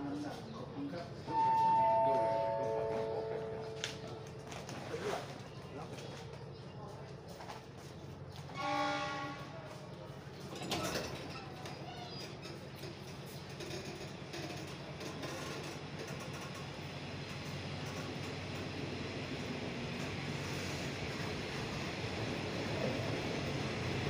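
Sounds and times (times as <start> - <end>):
train rumbling on rails: 0.0 - 24.0.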